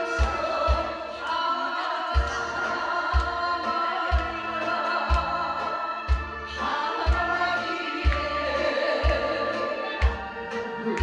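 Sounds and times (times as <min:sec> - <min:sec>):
recorded backing track: 0:00.0 - 0:11.0
deep kick drum beats: 0:00.2 - 0:01.0, 0:02.2 - 0:04.5.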